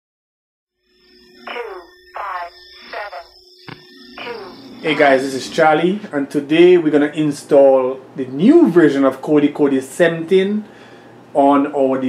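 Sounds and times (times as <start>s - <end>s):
faint steady high tone: 0.8s - 6.5s.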